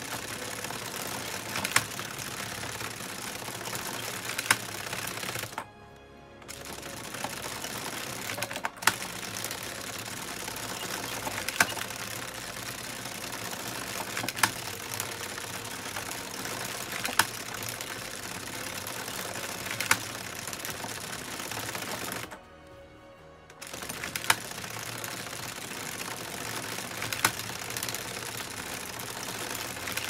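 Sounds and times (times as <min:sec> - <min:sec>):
knitting machine click: 0:00.0 - 0:05.7, 0:06.4 - 0:22.4, 0:23.6 - 0:30.0
knitting machine rattling: 0:00.0 - 0:05.7, 0:06.4 - 0:22.4, 0:23.6 - 0:30.0.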